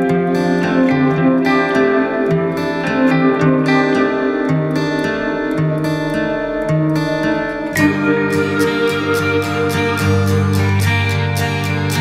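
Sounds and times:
acoustic guitar plucking: 0.0 - 12.0.

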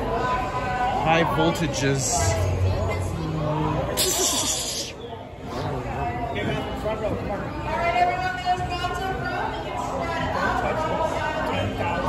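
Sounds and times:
indistinct chatter in a hall: 0.0 - 12.0.

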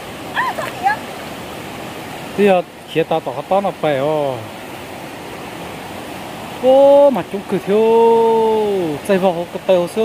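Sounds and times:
stream running over stones: 0.0 - 10.0.

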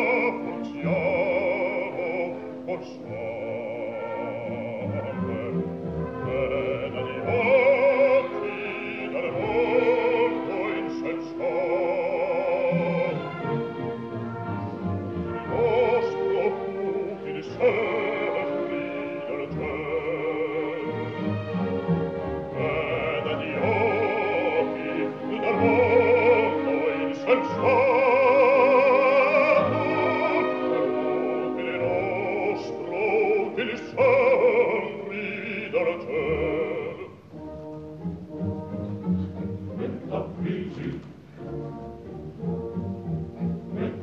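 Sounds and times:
opera singer with vibrato: 0.0 - 14.0, 15.2 - 37.3, 39.7 - 41.4, 43.6 - 44.0
orchestra: 0.0 - 44.0.

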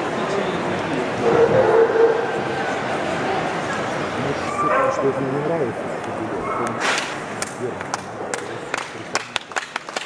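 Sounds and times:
crowd chatter: 0.0 - 10.0
dog barking: 1.2 - 2.2, 4.5 - 5.1.

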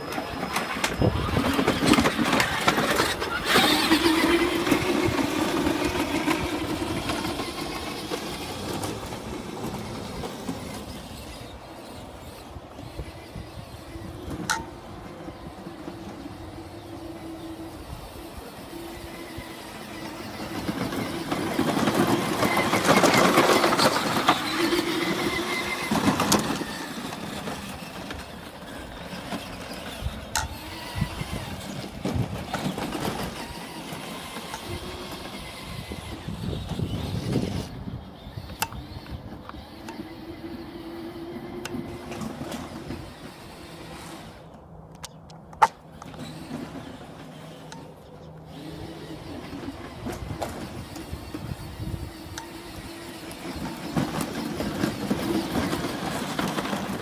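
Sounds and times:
electric motors whining: 0.0 - 57.0.

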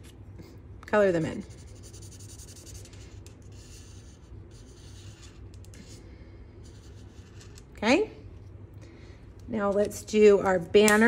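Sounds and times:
marker tip scratching on cardstock: 1.5 - 6.0.

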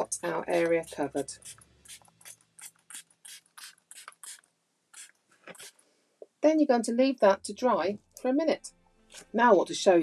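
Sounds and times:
spray bottle hissing puffs: 1.4 - 4.4, 5.0 - 5.8.

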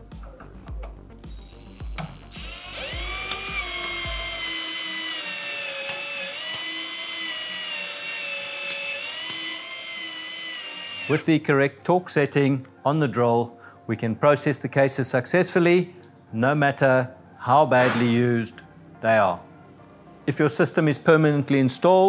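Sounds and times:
cordless drill whining: 1.3 - 11.2.

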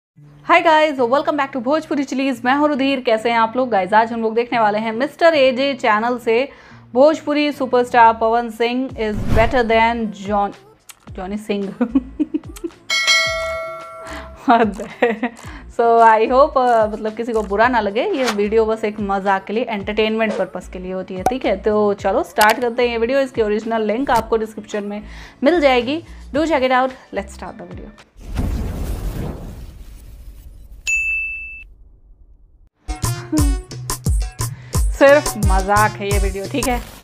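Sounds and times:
low rumble: 9.1 - 9.9
bright bell chime: 12.9 - 14.4.

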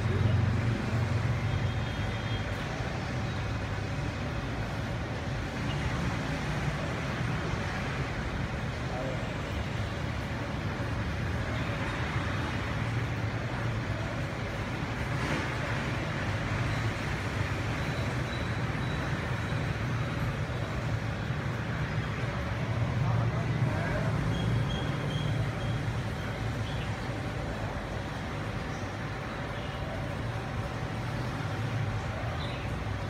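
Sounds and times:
low rumble of passing vehicles: 0.0 - 33.0
voices: 0.0 - 33.0.

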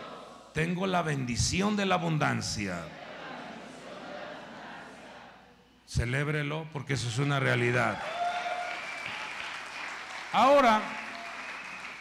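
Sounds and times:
congregation applauding: 7.6 - 12.0.

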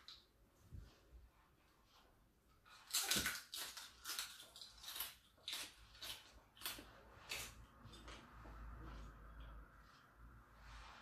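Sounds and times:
crunchy chewing: 2.6 - 8.3.

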